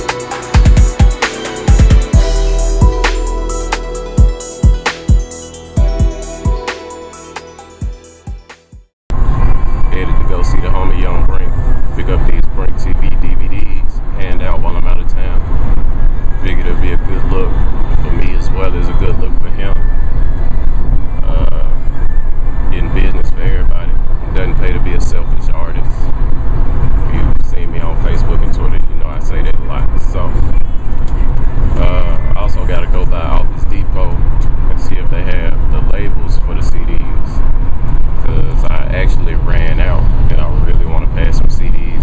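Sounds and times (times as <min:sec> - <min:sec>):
car road and engine rumble: 0:09.1 - 0:42.0
man speaking: 0:27.2 - 0:30.6, 0:31.8 - 0:34.2, 0:34.8 - 0:37.3, 0:38.3 - 0:42.0.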